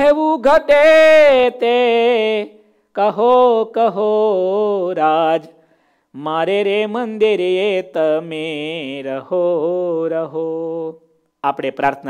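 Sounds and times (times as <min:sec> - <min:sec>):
man chanting a prayer: 0:06.2 - 0:12.0.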